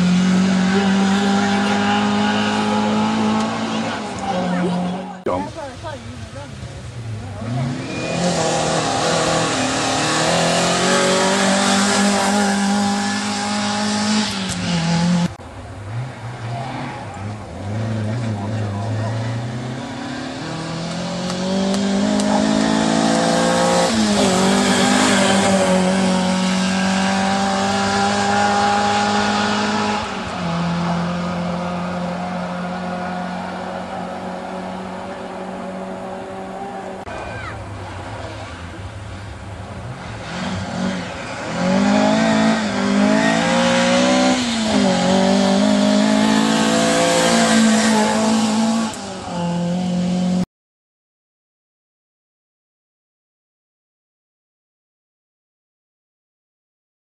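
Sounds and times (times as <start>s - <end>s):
rally car engine revving: 0.0s - 50.5s.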